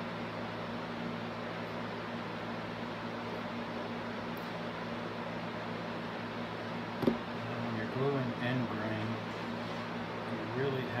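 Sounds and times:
electrical hum and hiss: 0.0s - 11.0s.

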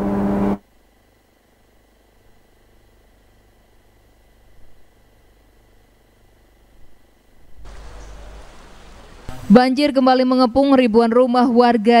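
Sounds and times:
faint electrical hum and hiss: 0.0s - 12.0s
woman's voice: 9.5s - 12.0s.

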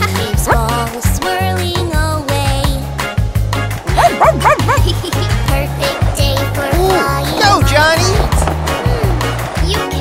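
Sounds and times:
children's song backing track: 0.0s - 10.0s
cartoon puppy yapping: 4.0s - 4.9s.

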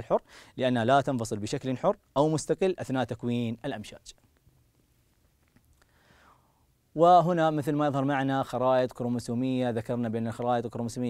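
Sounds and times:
faint breath drawn in: 0.2s - 0.6s, 5.8s - 6.7s.

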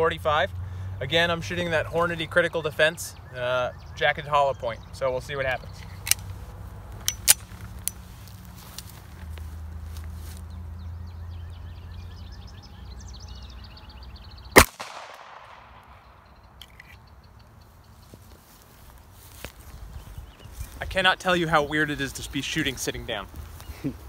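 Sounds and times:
pistol shot: 14.6s - 16.1s.

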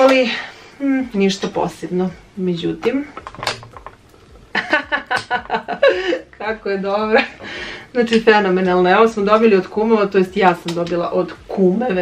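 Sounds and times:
woman laughing: 4.5s - 7.5s.

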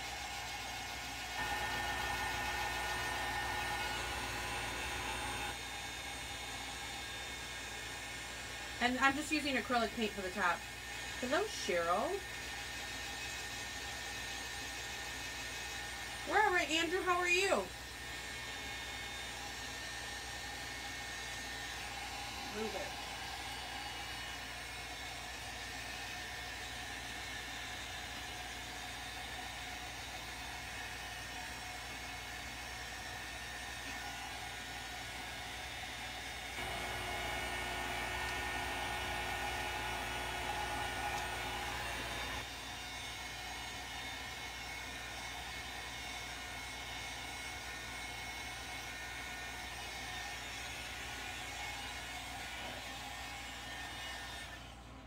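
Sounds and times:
heat gun blowing hot air: 0.0s - 54.6s.

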